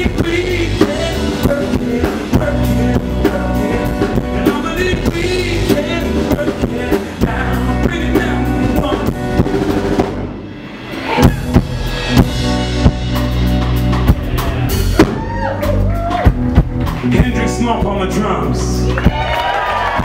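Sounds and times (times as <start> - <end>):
bass drum and snare beat: 0.0 - 10.3, 11.1 - 20.0
live band instrumental: 0.0 - 20.0.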